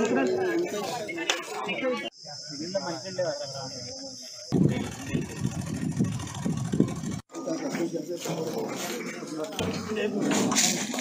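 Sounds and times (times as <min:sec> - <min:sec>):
men talking over one another: 0:00.0 - 0:10.6.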